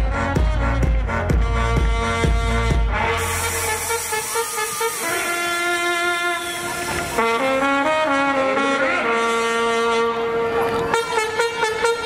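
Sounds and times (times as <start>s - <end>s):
brass music: 0.0s - 12.0s.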